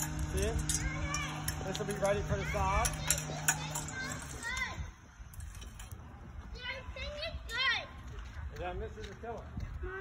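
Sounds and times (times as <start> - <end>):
children calling and crying: 0.0 - 8.6, 9.6 - 10.0.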